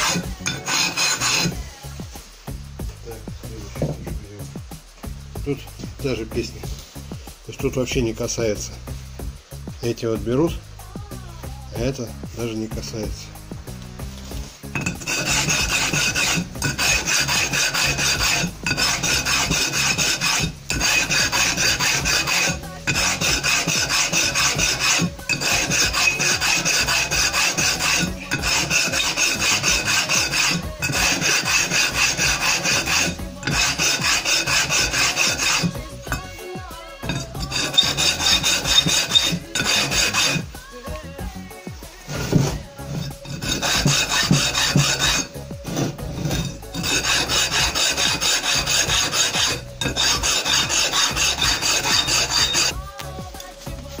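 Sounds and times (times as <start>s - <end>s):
metal scraping on abrasive stone: 0.0s - 2.0s, 3.7s - 4.1s, 14.2s - 41.4s, 42.0s - 52.9s.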